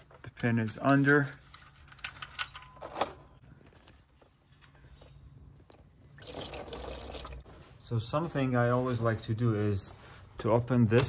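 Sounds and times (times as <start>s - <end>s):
oil pouring into drain pan: 6.2s - 7.4s.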